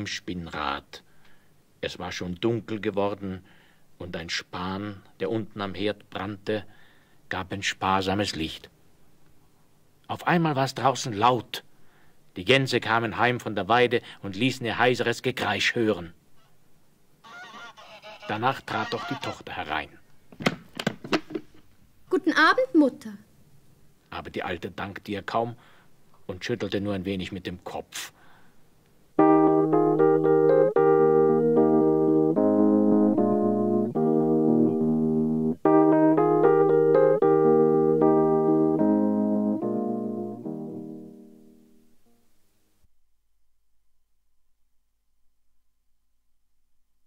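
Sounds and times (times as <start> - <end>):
geese honking hoarsely: 17.2 - 19.5
keyboard playing slow chords: 29.2 - 41.8.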